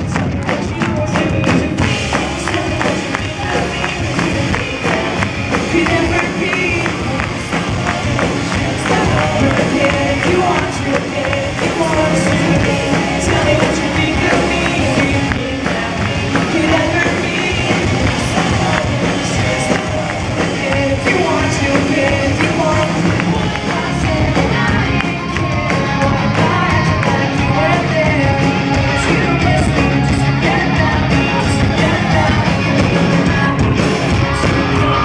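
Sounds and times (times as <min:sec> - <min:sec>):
electric guitar: 0:00.0 - 0:35.0
lead vocalist singing: 0:00.0 - 0:35.0
rock band playing: 0:00.0 - 0:35.0.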